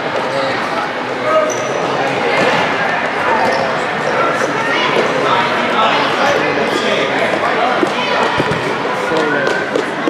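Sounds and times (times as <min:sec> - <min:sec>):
overlapping voices: 0:04.3 - 0:10.0.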